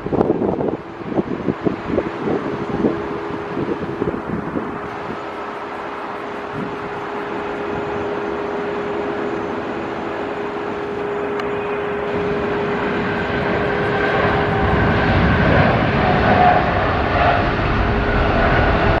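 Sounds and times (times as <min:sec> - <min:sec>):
jet engines at takeoff power: 0:00.0 - 0:19.0
steady engine tone: 0:00.0 - 0:19.0.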